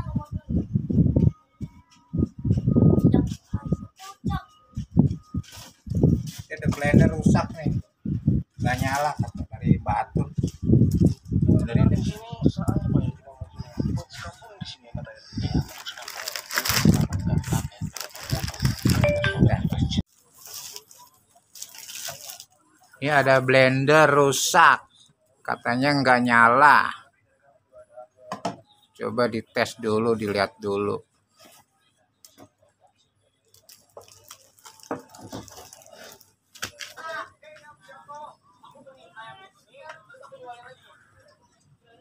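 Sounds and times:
plastic bag rustling and crinkling: 15.6s - 19.2s, 20.1s - 22.9s, 33.5s - 37.0s.

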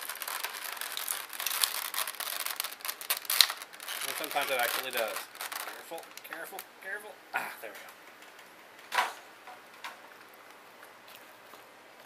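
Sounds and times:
plastic packaging crinkling: 0.0s - 6.7s
sharp plastic crack: 0.0s - 6.7s.

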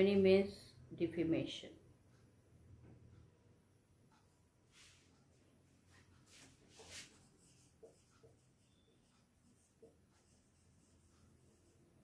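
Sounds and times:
marker writing on whiteboard: 4.1s - 12.0s.

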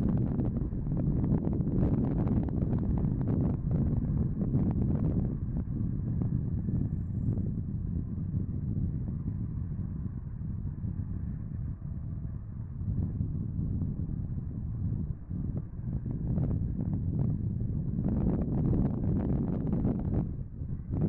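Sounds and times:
diesel locomotive engine rumble: 0.0s - 21.0s.

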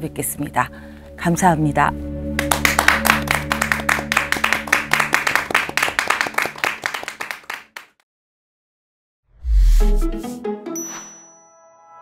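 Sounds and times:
closing music: 2.3s - 6.9s, 9.5s - 11.0s
people clapping: 2.4s - 8.0s.

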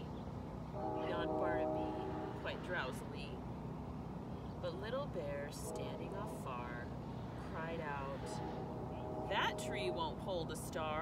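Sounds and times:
distant horn: 0.7s - 3.2s, 5.5s - 11.0s.

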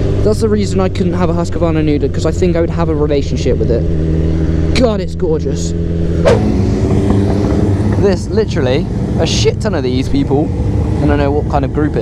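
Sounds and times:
motorcycle engine running: 0.0s - 12.0s
short sharp sound: 6.2s - 6.6s.

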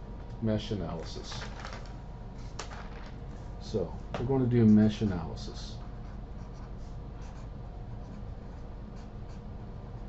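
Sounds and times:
low steady hum: 0.0s - 10.0s
marker writing on paper: 5.8s - 9.5s.

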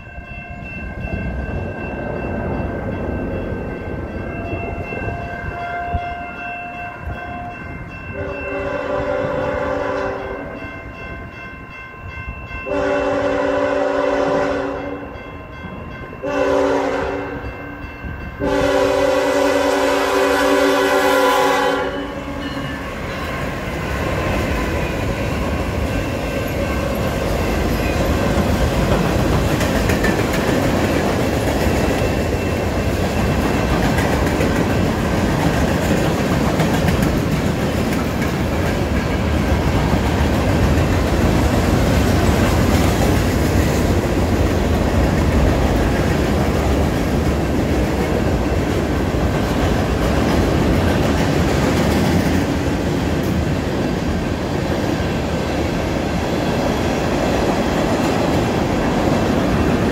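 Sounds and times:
diesel locomotive horn blasts: 5.0s - 10.6s, 12.7s - 15.2s, 16.2s - 17.5s, 18.4s - 22.7s
wheels clickety-clack: 23.4s - 53.6s.

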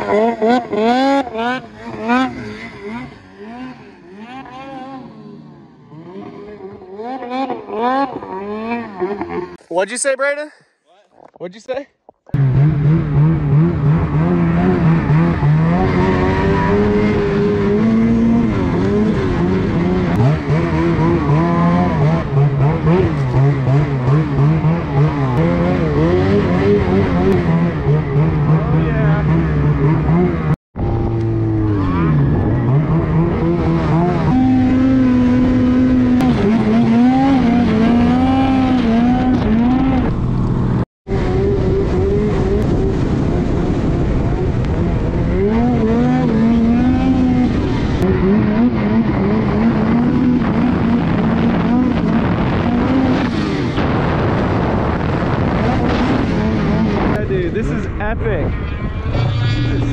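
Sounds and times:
snowmobile engine revving: 0.0s - 10.4s, 12.3s - 59.9s.

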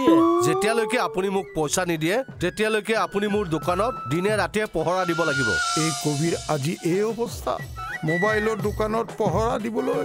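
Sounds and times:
howl-like vocal note: 0.0s - 1.5s
background music: 0.0s - 10.0s.

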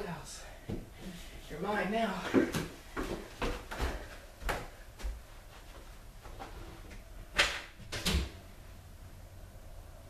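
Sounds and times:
footsteps on wooden stairs: 2.2s - 5.9s.

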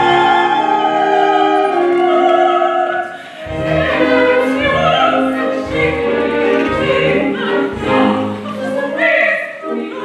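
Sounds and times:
orchestra playing: 0.0s - 10.0s
voices singing opera: 0.0s - 10.0s.

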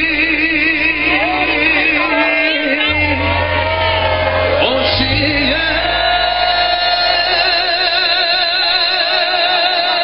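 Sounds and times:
live band accompaniment: 0.0s - 10.0s
man singing a long note: 0.0s - 10.0s.

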